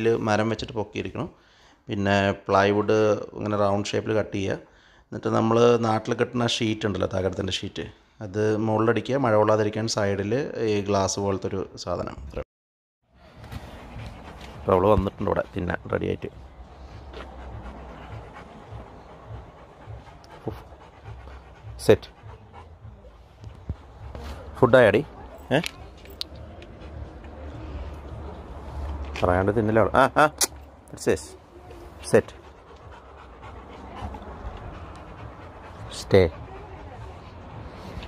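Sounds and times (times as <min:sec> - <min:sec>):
dog panting: 0:13.2 - 0:38.0.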